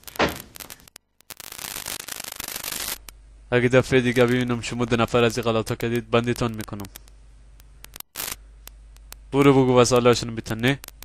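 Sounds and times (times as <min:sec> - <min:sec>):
low electrical hum and hiss: 0:00.0 - 0:11.0
short burst of noise: 0:07.9 - 0:08.5.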